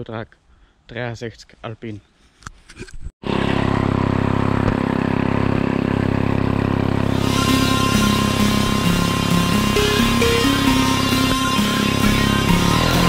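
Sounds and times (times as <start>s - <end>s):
brushcutter engine running: 3.3s - 13.0s
electronic music: 7.1s - 13.0s.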